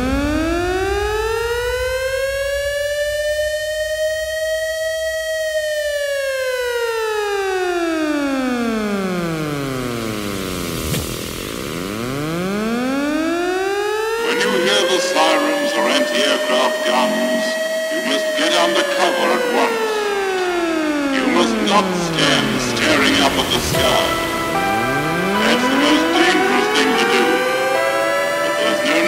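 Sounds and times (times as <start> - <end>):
air-raid siren wailing: 0.0 - 29.0.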